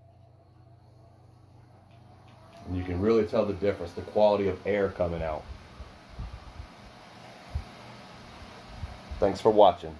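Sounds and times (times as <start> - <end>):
fan airflow hiss: 0.0 - 9.9.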